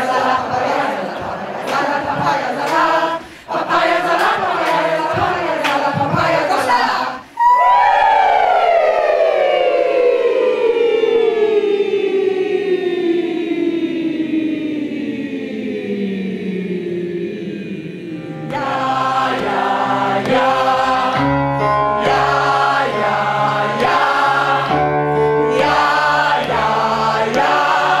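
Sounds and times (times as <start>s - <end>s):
choir gliding down in pitch: 0.0s - 28.0s
choir singing sustained chords: 0.0s - 28.0s.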